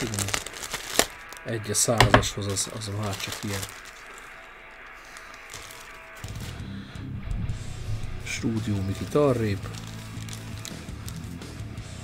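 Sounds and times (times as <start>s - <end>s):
plastic bag rustling: 0.0s - 6.6s, 7.9s - 11.5s
low pitched sound: 6.9s - 9.1s.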